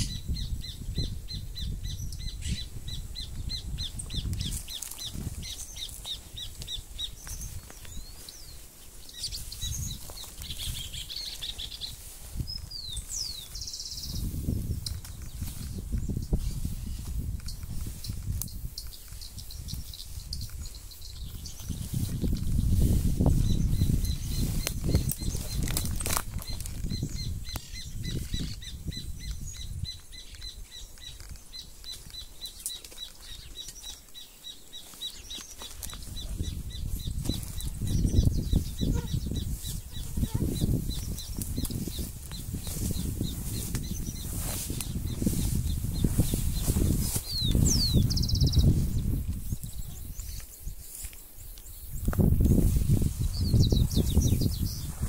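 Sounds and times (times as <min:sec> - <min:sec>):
wind buffeting microphone: 0:00.0 - 0:32.3, 0:34.8 - 0:51.1, 0:51.7 - 0:55.0.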